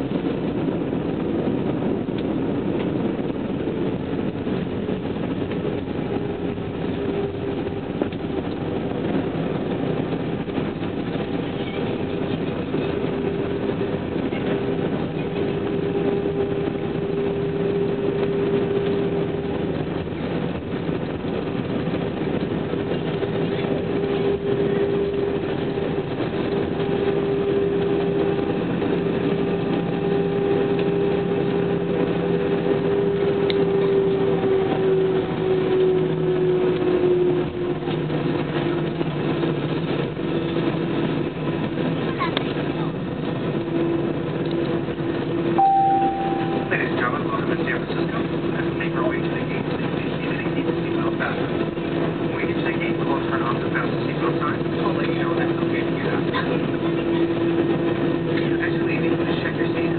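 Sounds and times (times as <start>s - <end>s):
jet engines humming in cabin: 0.0s - 59.9s
single chime: 45.6s - 46.8s
faint voices: 45.8s - 59.9s.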